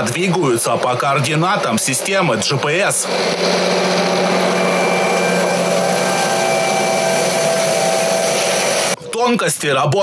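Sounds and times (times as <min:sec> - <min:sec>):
tractor engine rushing: 0:00.0 - 0:09.0
faint steady whines: 0:01.6 - 0:09.0.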